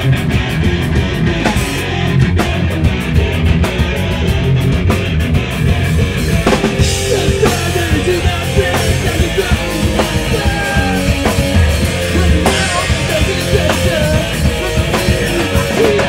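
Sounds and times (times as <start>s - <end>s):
distorted electric guitars: 0.0s - 16.0s
pounding drum kit: 0.0s - 16.0s.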